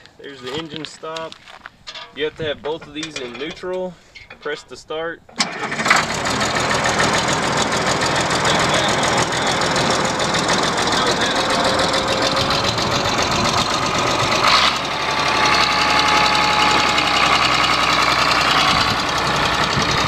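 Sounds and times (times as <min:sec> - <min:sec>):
dozer engine running: 0:02.5 - 0:20.0.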